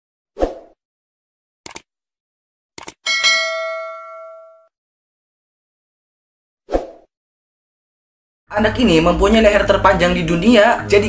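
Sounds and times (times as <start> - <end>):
quick double clicks: 1.6 - 1.9, 2.8 - 3.0
bright bell ding: 3.1 - 4.7.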